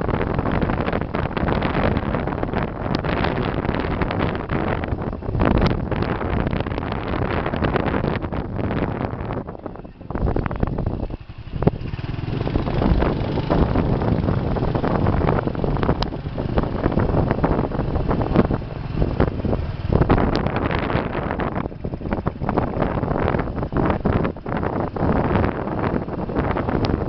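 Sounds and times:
motorbike riding noise: 0.0 - 27.0
wind buffeting microphone: 0.0 - 27.0.

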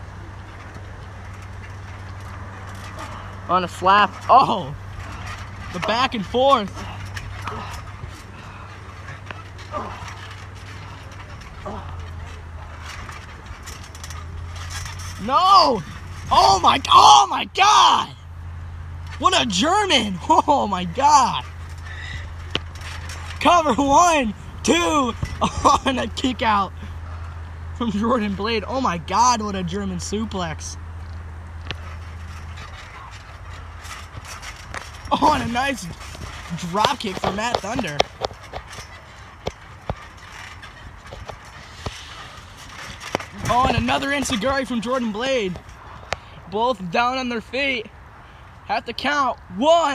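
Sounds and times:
steady low hum: 0.0 - 48.7
steady low rumble: 0.0 - 49.6
trampoline creaks and knocks: 0.0 - 49.9
short grunts: 2.9 - 3.5, 6.7 - 12.3, 21.8 - 22.4.

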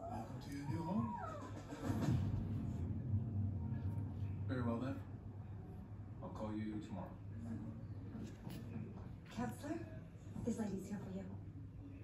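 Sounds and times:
television background music: 0.0 - 12.0.

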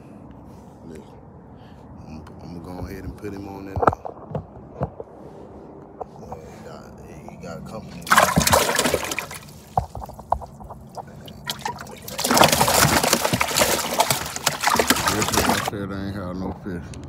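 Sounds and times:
fish splashing in water: 7.8 - 15.7.

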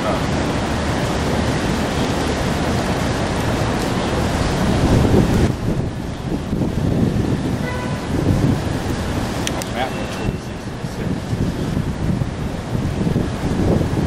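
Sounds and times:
city street noise: 0.0 - 14.0
wind buffeting microphone: 0.0 - 14.0.

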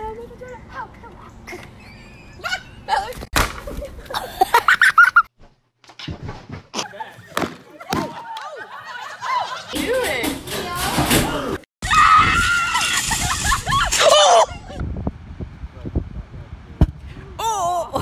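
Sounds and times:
young women screaming and shouting: 11.8 - 14.8.

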